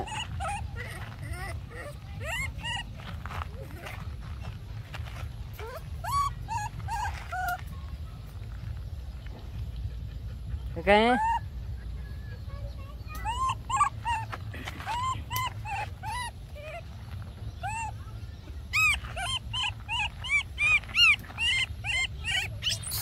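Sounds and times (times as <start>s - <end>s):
baby monkey squeaking cries: 0.0s - 3.0s, 5.6s - 7.6s, 11.1s - 11.6s, 13.1s - 17.0s, 17.6s - 18.0s, 18.7s - 23.0s.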